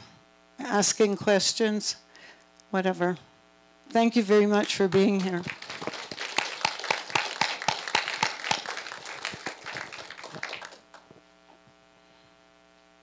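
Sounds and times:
audience applauding: 4.6s - 11.1s.

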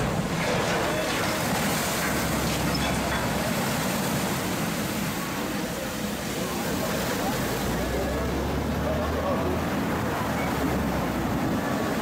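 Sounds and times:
water rushing and splashing: 0.0s - 12.0s.

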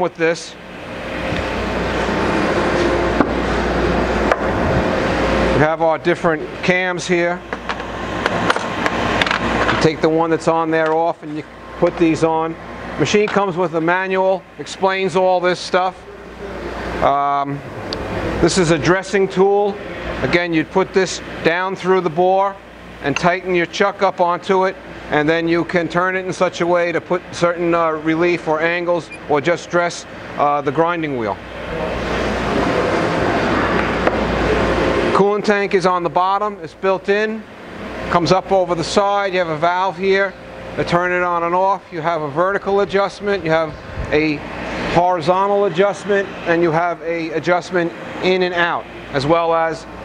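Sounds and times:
steady rushing noise: 0.6s - 10.3s
loud rushing noise: 0.7s - 6.4s, 31.6s - 35.2s, 43.6s - 47.2s.

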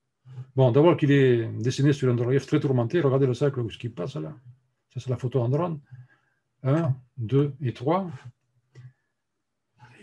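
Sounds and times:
man speaking: 0.5s - 4.4s, 5.0s - 6.0s, 6.6s - 8.3s.

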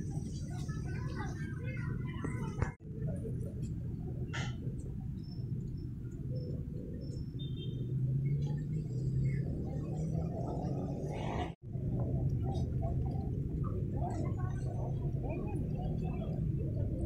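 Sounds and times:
faint indistinct voices: 0.0s - 4.9s, 9.0s - 17.0s
market rumble: 8.2s - 17.0s.

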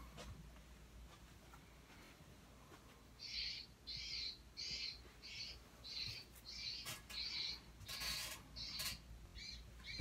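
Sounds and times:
bird chirping: 3.2s - 10.0s.

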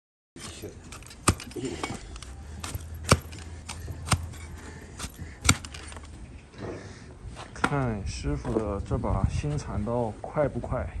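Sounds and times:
blade slicing through hoof: 0.4s - 1.6s, 2.6s - 5.9s.

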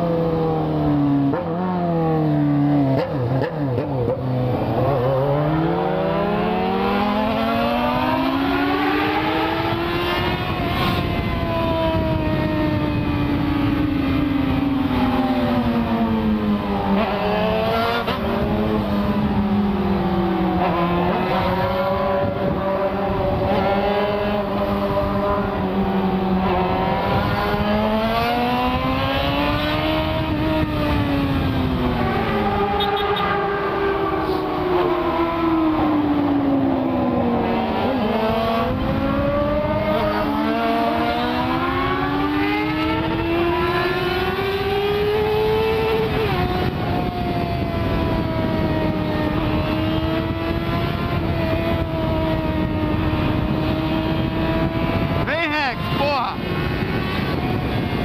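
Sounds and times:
motorcycle engine accelerating: 0.0s - 58.0s
wind rush on microphone: 4.5s - 58.0s.

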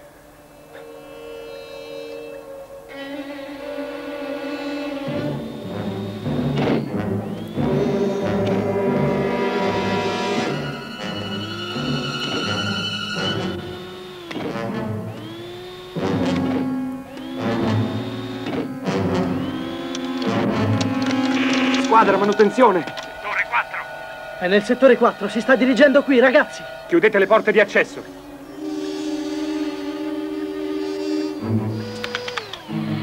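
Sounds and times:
tense orchestral music: 0.1s - 15.4s, 16.1s - 33.0s
held electronic tones swooping up: 4.5s - 16.0s, 16.7s - 33.0s.

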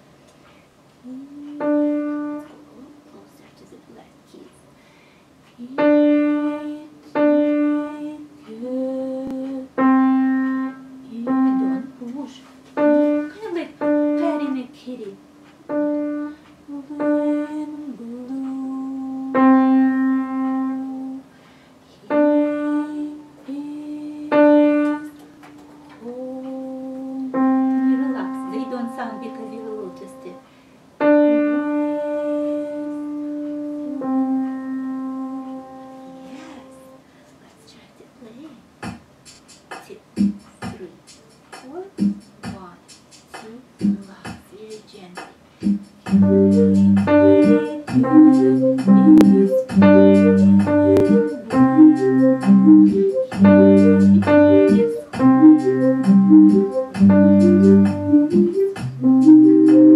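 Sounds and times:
woman's soft voice: 1.0s - 4.7s, 5.5s - 7.2s, 7.8s - 9.8s, 11.0s - 12.6s, 13.2s - 15.2s, 16.3s - 19.5s, 21.9s - 24.7s, 25.8s - 30.4s, 35.2s - 38.6s, 39.8s - 41.0s, 41.6s - 45.3s, 46.2s - 48.4s
piano single notes: 8.7s - 14.6s, 18.3s - 21.2s, 26.0s - 30.4s, 31.0s - 37.0s, 46.1s - 59.9s.

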